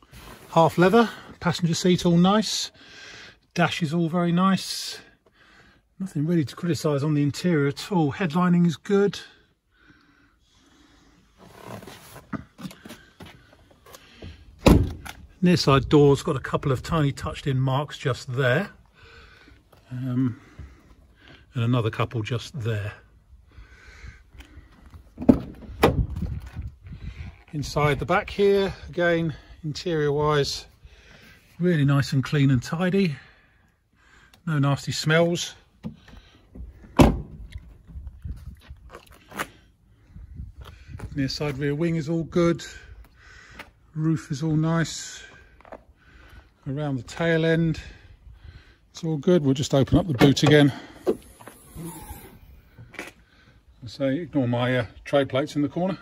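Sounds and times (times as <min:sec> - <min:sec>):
car door shutting: 0:14.6 - 0:15.2, 0:36.9 - 0:37.5.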